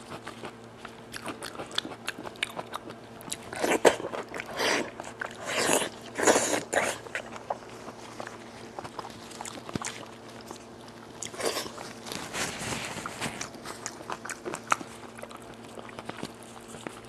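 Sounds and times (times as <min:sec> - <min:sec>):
wet chewing and lip smacks: 0:00.0 - 0:12.3, 0:13.0 - 0:17.0.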